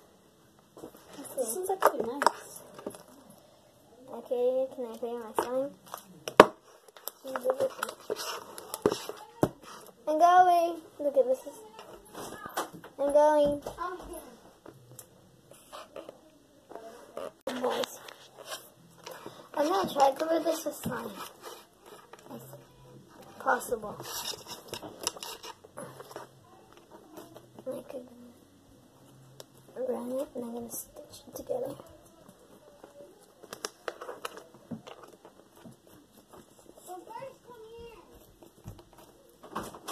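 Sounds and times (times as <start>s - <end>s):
rustling: 4.6s - 12.8s, 16.7s - 28.1s, 31.4s - 39.9s.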